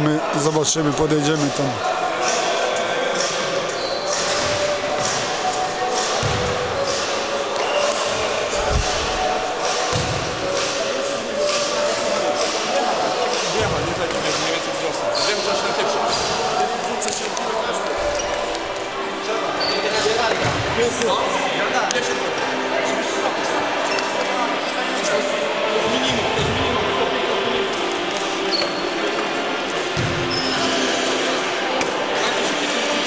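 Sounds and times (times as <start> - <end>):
overlapping voices in echoing hall: 0.0 - 33.0.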